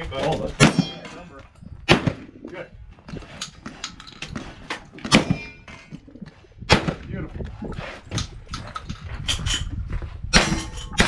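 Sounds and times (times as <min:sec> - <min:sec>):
metallic ring of steel target: 0:00.6 - 0:01.2, 0:10.3 - 0:11.0
gunshots: 0:01.8 - 0:02.3, 0:05.0 - 0:05.6, 0:06.6 - 0:07.1.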